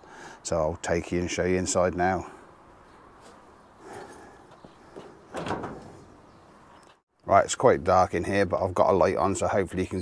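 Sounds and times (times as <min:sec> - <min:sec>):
steel door clunk: 0:05.0 - 0:06.3.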